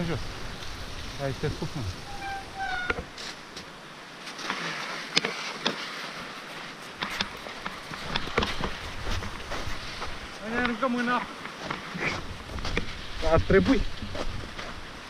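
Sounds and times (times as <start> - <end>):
bike tyres rolling on snow: 0.0 - 15.0.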